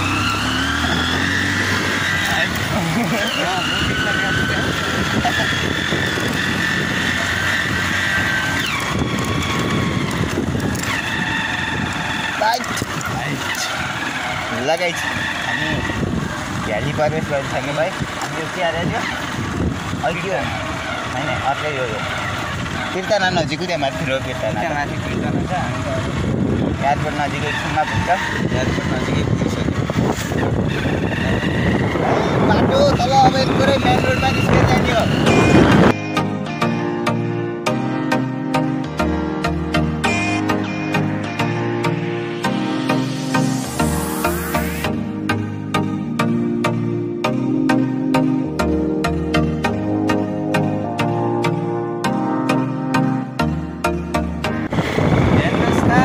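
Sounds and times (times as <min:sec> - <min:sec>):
wind rushing over microphone: 0:00.0 - 0:13.5, 0:15.2 - 0:17.2, 0:19.2 - 0:20.0, 0:24.8 - 0:36.0, 0:54.5 - 0:56.0
motorcycle riding on dirt road: 0:00.0 - 0:42.2, 0:43.2 - 0:56.0.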